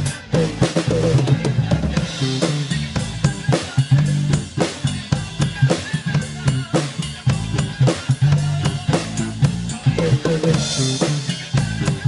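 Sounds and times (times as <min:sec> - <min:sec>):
drum kit: 0:00.0 - 0:12.0
electric bass guitar: 0:00.0 - 0:12.0.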